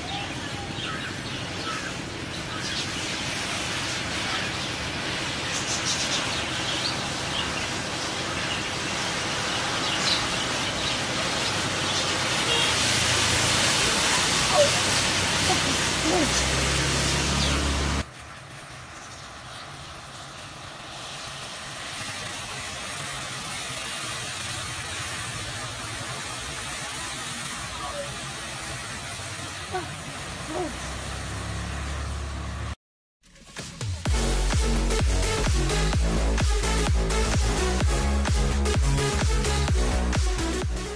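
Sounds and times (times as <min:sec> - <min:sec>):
matchstick heads burning with hiss: 0:18.0 - 0:30.7.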